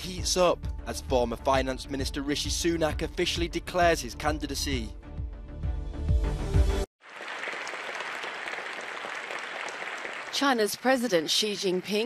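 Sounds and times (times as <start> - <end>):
audience applauding: 7.0 - 11.2.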